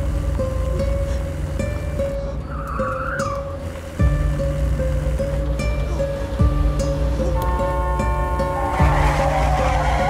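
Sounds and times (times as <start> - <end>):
car tyres squealing: 0.0 - 10.0
film score with held note: 0.0 - 10.0.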